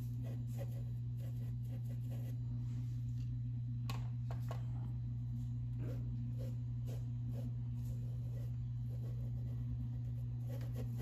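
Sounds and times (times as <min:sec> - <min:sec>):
paintbrush scratching on fabric: 0:00.0 - 0:02.4, 0:05.8 - 0:11.0
steady low hum: 0:00.0 - 0:11.0.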